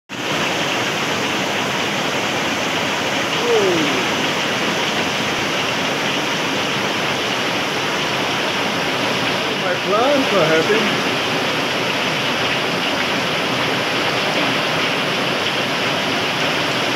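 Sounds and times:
heavy rain pouring: 0.1 - 16.9.

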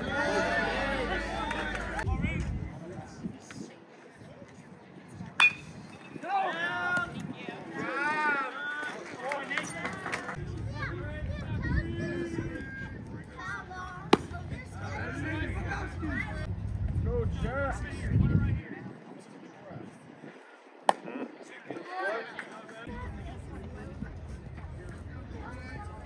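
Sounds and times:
people shouting: 0.0 - 2.0
metal bat hitting ball: 5.4 - 5.8.

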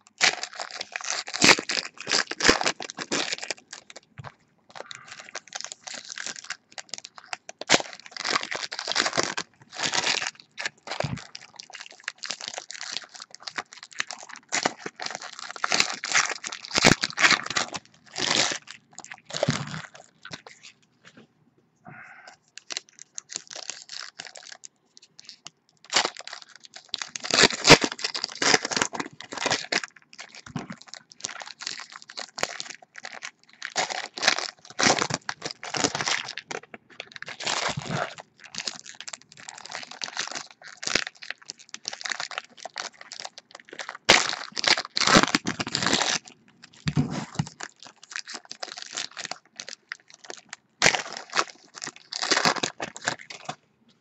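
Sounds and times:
wrappers torn open and crinkled: 0.0 - 20.9, 22.4 - 53.6.

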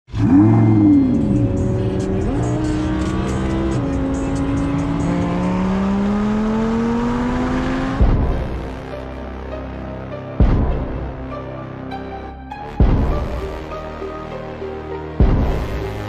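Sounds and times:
sports car engine revving: 0.1 - 8.7.

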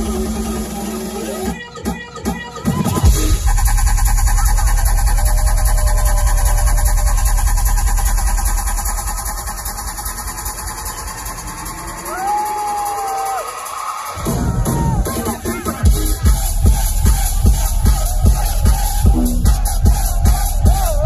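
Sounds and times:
electronic dance music: 0.0 - 21.0
heavy bass note: 15.8 - 21.0.

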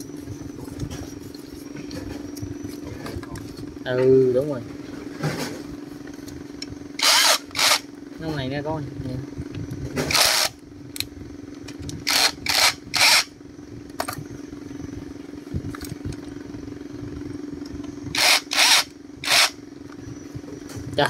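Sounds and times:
steady low hum: 0.0 - 21.0
power tool bursts: 7.0 - 7.9, 10.0 - 10.6, 12.0 - 13.3, 18.1 - 19.6.

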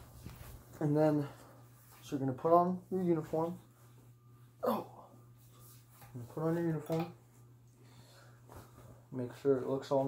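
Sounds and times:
shirt fabric rustling: 0.0 - 7.6, 8.2 - 10.0
steady low hum: 0.0 - 10.0.

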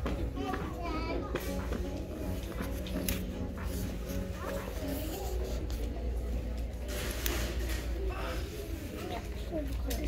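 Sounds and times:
child's voice: 0.0 - 2.2
faint store music: 0.0 - 10.0
shoppers' voices: 0.0 - 10.0.

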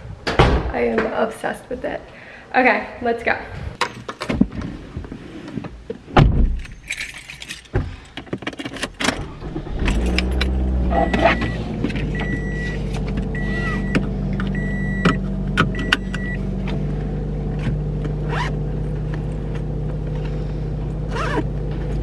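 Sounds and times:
car engine idling: 9.2 - 22.0
car warning chime beeps: 10.9 - 16.4.

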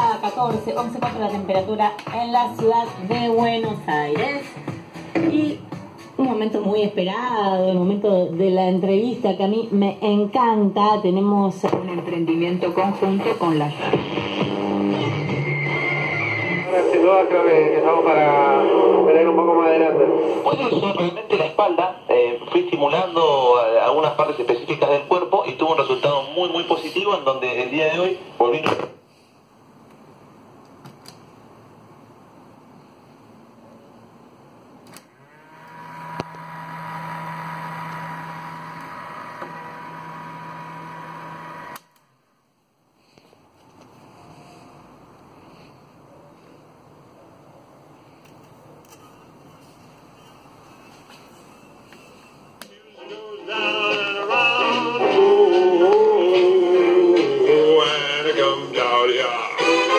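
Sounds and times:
radio music between stations: 0.0 - 6.7, 11.5 - 28.9, 57.2 - 59.9
cassette motor whine: 12.7 - 21.4, 34.8 - 42.2
steady high tone: 14.9 - 22.4, 35.2 - 41.9
low hum: 35.2 - 42.1.

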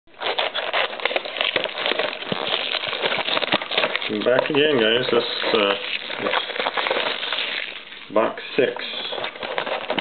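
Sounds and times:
plastic shrink-wrap crinkling: 0.1 - 10.0.

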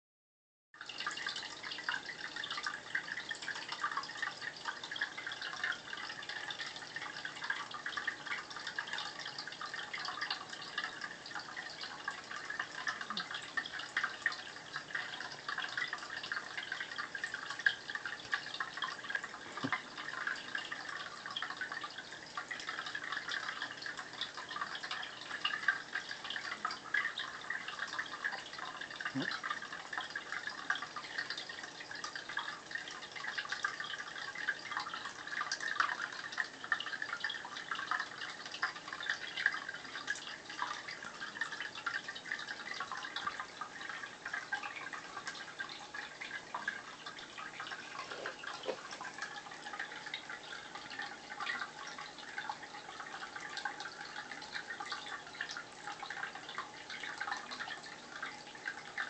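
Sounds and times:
aquarium water trickling and splashing: 0.8 - 59.0.

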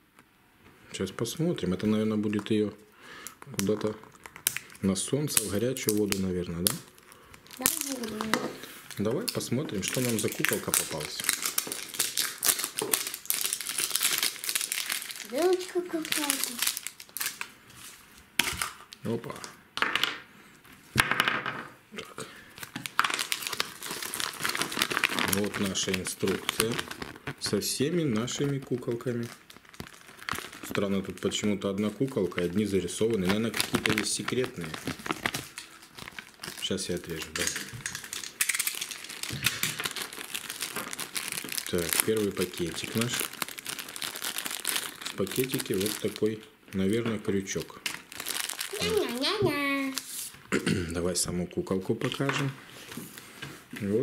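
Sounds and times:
plastic wrapper crinkling: 1.6 - 19.6, 22.5 - 50.5.

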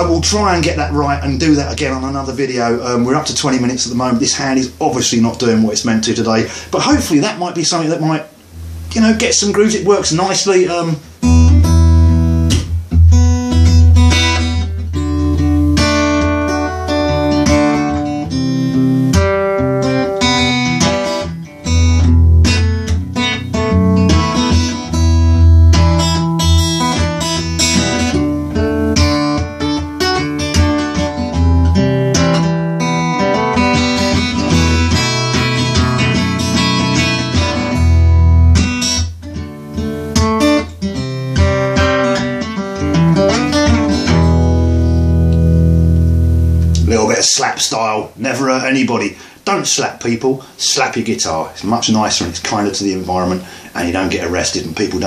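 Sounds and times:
fingerstyle acoustic guitar: 11.1 - 47.0
percussive slaps on guitar strings: 12.5 - 12.9.

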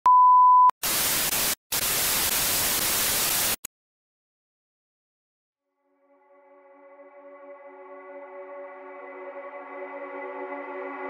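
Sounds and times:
high test tone beep: 0.1 - 0.7
tv static hiss: 0.8 - 3.7.

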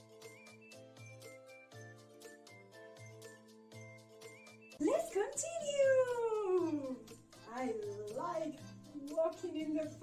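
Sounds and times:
children's background music: 0.0 - 10.0.

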